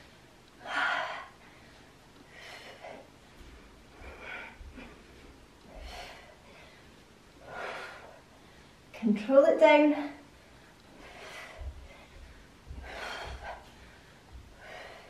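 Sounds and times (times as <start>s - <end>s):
woman's sharp breaths of effort: 4.0s - 8.9s, 10.4s - 15.0s.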